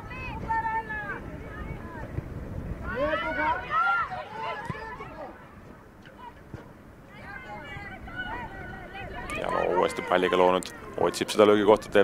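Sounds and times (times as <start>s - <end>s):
players shouting: 2.8s - 6.5s, 7.1s - 12.0s.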